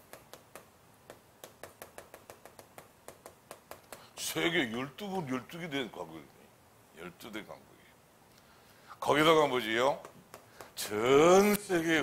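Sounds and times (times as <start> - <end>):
chalk ticking on chalkboard: 0.0 - 4.2, 9.9 - 10.8.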